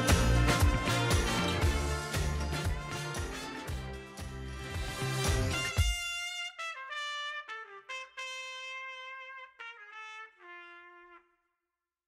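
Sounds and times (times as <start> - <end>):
band playing: 0.0 - 6.4
brass instrument held notes: 0.0 - 11.3.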